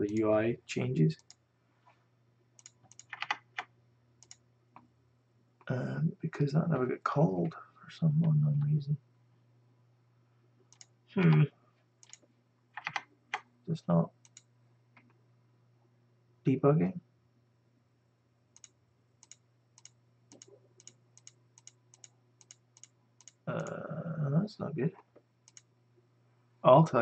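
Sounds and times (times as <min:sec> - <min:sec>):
low steady hum: 0:00.0 - 0:27.0
computer mouse clicks: 0:02.6 - 0:04.9, 0:10.7 - 0:10.9, 0:12.0 - 0:13.5, 0:14.2 - 0:15.2, 0:18.6 - 0:23.8, 0:25.4 - 0:25.7.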